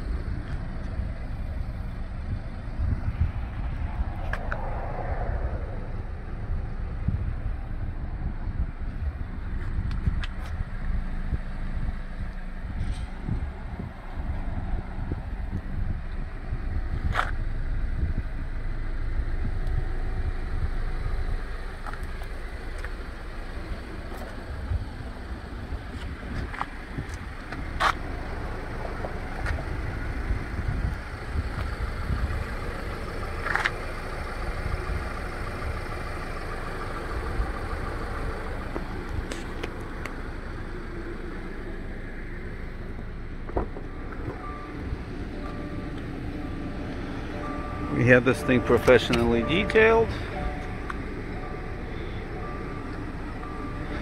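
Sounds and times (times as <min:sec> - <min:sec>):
road traffic noise: 0:00.0 - 0:54.0
wind rumbling on microphone: 0:00.1 - 0:18.7.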